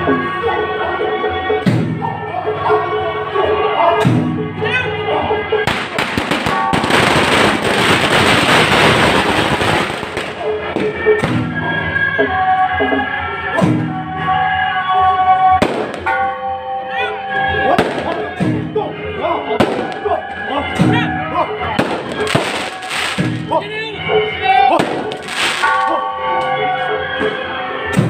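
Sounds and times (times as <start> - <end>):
procession music with held notes: 0.0 - 28.0
firecrackers crackling: 5.7 - 11.4, 15.6 - 16.3, 17.8 - 18.4, 19.6 - 20.2, 21.8 - 23.5, 24.8 - 25.9
sharp firecracker bangs: 5.7 - 11.4, 15.6 - 16.3, 17.8 - 18.4, 19.6 - 20.2, 21.8 - 23.5, 24.8 - 25.9.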